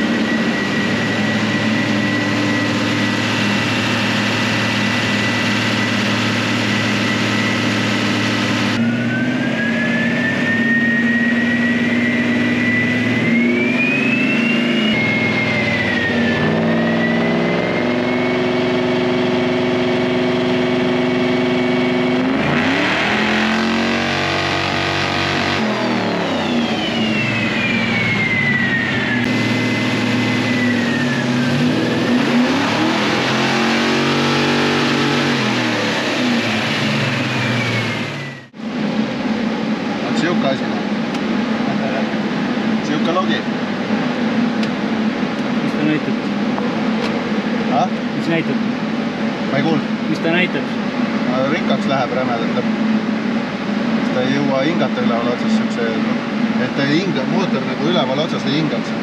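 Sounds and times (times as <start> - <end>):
engine revving on dyno: 0.0 - 59.0
whine following engine speed: 0.0 - 59.0.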